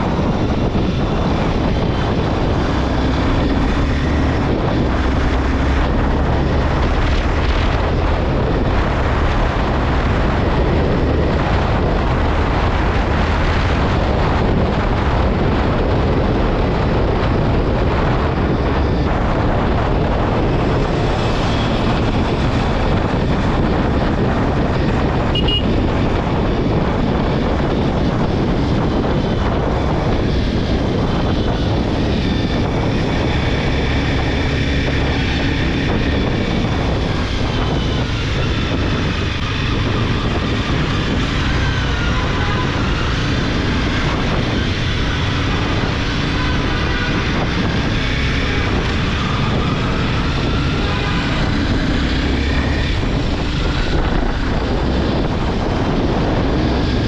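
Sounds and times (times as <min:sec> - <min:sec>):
motorcycle engine revving: 0:00.0 - 0:57.0
wind rush on microphone: 0:00.0 - 0:57.0.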